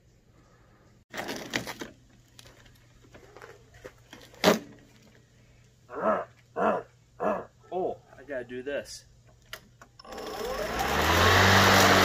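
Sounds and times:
handling rustle: 1.1 - 5.4.

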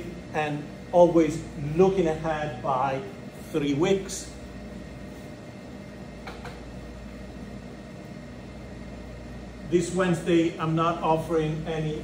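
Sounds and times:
low hum of room machinery: 0.0 - 12.0.

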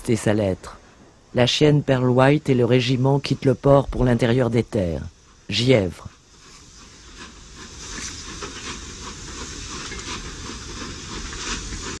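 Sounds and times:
train running with rhythmic clacking: 6.1 - 12.0.

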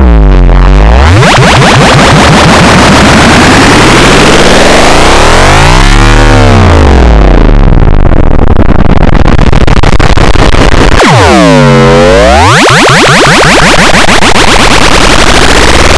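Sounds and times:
distorted pitch-sweeping audio effect: 0.0 - 15.9.

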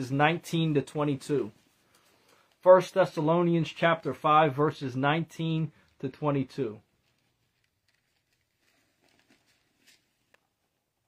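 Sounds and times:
faint soft rustles: 6.9 - 10.6.

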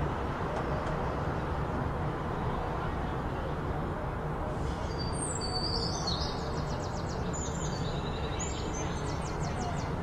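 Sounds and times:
small birds chirping and trilling: 4.9 - 10.0.

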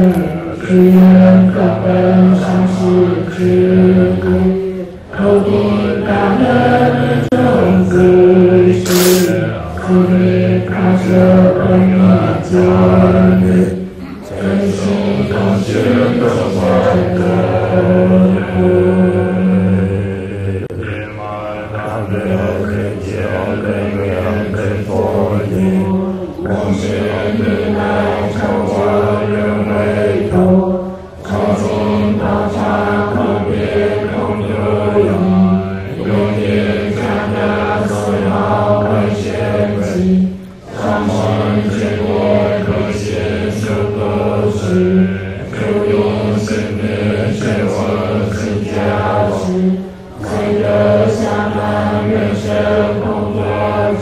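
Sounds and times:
man chanting in deep voice: 0.0 - 54.0.

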